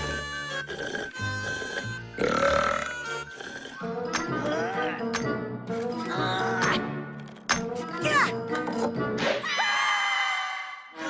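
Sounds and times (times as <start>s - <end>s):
cartoon character burping: 2.2s - 3.8s.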